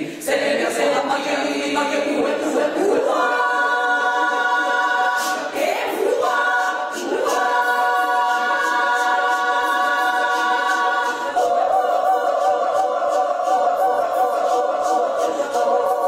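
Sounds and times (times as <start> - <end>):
women's choir singing a cappella: 0.0 - 16.0.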